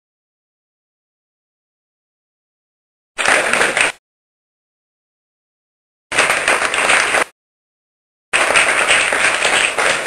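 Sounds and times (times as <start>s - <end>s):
audience applauding: 3.2s - 4.0s, 6.2s - 7.3s, 8.4s - 10.0s.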